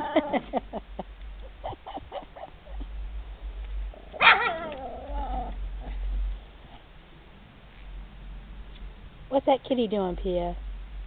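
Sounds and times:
dog crying: 4.1 - 6.0
small dog yipping: 4.1 - 6.0.

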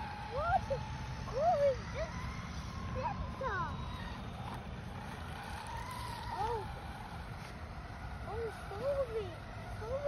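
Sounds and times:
toy truck motor whining: 0.0 - 10.0.

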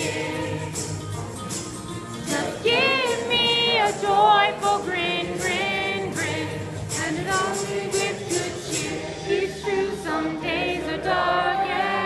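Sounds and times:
voices singing together: 0.0 - 1.2, 2.1 - 12.0
karaoke backing music: 0.0 - 12.0.

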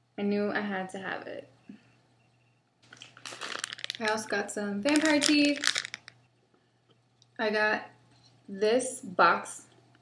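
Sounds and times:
plastic packaging crinkling: 2.8 - 6.2.

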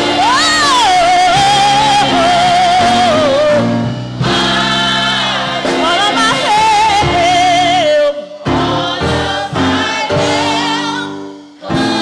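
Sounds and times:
gospel choir singing with band: 0.0 - 12.0.

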